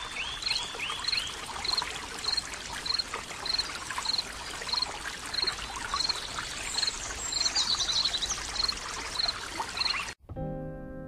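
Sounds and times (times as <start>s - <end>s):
bird song: 0.0s - 10.2s
stream rushing water: 0.0s - 10.2s.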